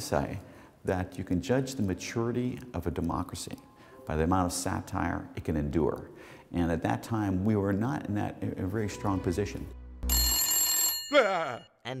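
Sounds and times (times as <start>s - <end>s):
telephone bell ringing: 10.1s - 11.8s.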